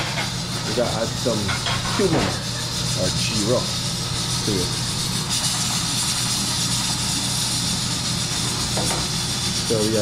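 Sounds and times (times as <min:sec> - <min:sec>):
garlic sizzling in oil: 0:00.0 - 0:10.0.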